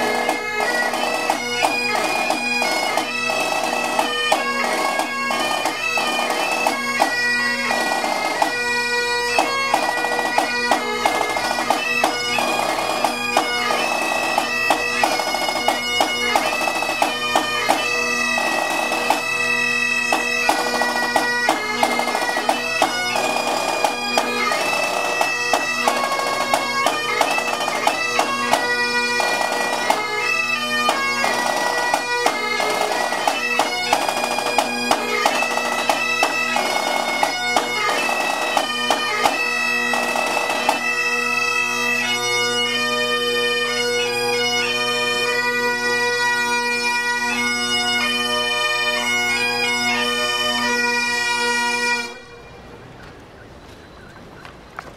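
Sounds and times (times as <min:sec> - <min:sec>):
bagpipes playing: 0:00.0 - 0:52.7
snare drum beating: 0:09.4 - 0:19.2, 0:20.1 - 0:28.6, 0:30.9 - 0:40.8.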